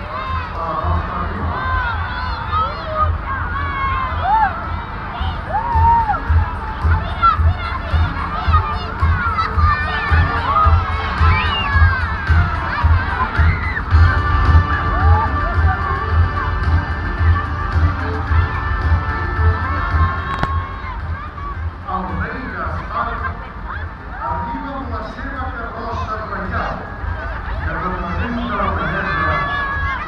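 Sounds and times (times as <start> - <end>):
children shouting and cheering: 0.0 - 30.0
low repeating beat: 0.0 - 30.0.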